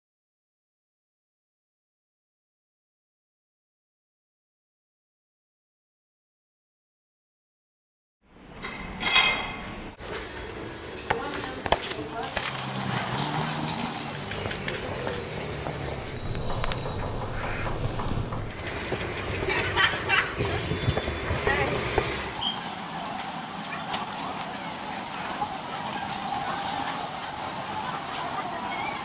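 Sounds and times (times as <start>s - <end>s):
indistinct voices: 10.0s - 16.4s, 18.4s - 29.0s
background bustle: 10.0s - 17.6s, 18.3s - 29.0s.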